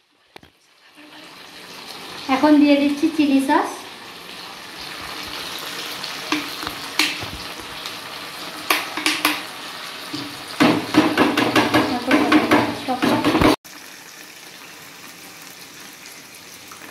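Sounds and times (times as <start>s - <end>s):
vegetables sizzling in a wok: 0.0s - 16.9s
utensils knocking against pan: 6.3s - 7.3s, 8.7s - 9.5s, 10.2s - 13.6s.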